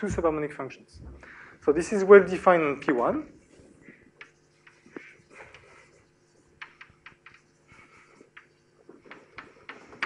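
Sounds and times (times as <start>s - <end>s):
scratchy writing stroke: 3.4s - 10.0s.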